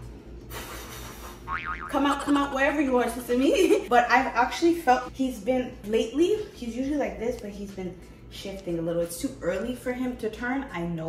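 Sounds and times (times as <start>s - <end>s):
comic boing sound effect: 1.5s - 2.2s.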